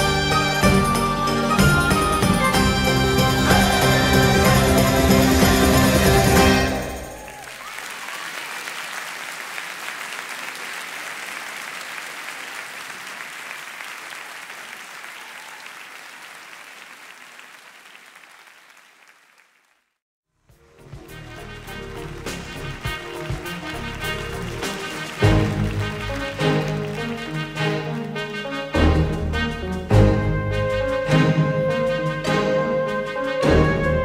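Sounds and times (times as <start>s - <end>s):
instrumental music with percussive strikes: 0.0s - 7.2s
audience applauding: 0.0s - 20.0s, 21.6s - 28.4s.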